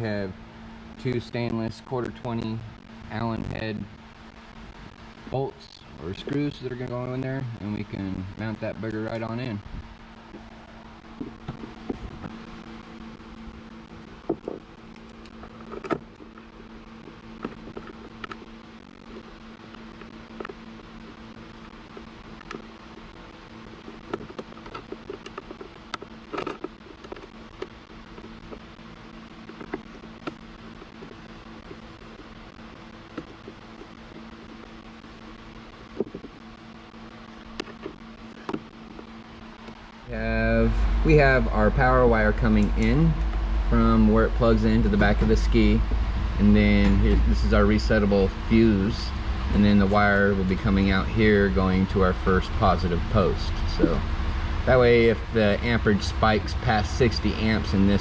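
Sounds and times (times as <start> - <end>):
steady mechanical hum: 0.0 - 58.0.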